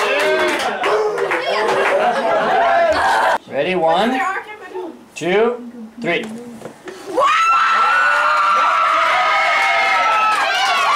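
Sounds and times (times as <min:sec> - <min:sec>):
crowd screaming and cheering: 0:07.2 - 0:10.9.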